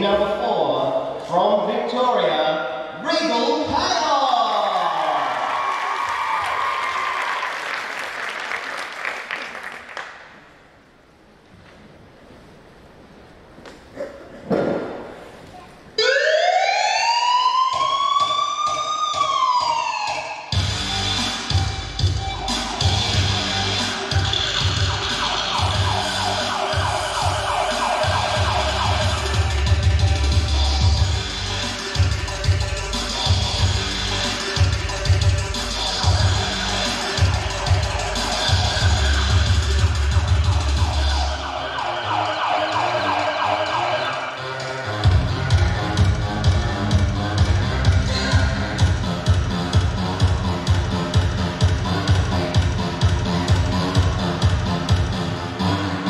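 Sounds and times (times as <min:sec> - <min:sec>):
dance music over sound system: 0:03.1 - 0:05.4, 0:17.2 - 0:56.0
siren wail: 0:16.0 - 0:20.6, 0:23.0 - 0:32.1, 0:36.0 - 0:45.3
heavy bass beat: 0:20.5 - 0:44.2, 0:44.8 - 0:56.0.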